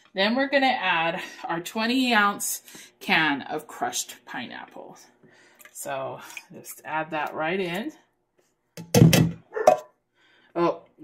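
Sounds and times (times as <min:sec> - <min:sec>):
metal can knocking on bowl: 0:08.8 - 0:09.8.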